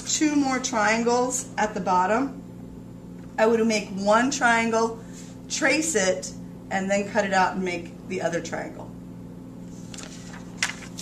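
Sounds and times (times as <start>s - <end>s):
low electrical hum: 0.0s - 11.0s
paper and cardboard rustling: 9.7s - 11.0s.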